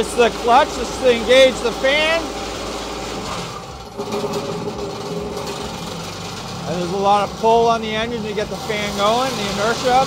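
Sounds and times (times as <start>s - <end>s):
diesel engine running: 0.0s - 10.0s
fan spinning up with rising tone: 0.0s - 10.0s.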